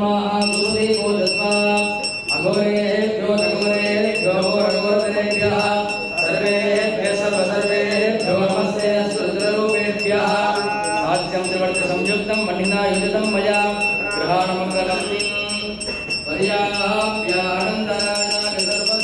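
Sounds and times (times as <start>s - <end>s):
men chanting in unison: 0.0s - 19.0s
bell rung rapidly: 0.4s - 19.0s.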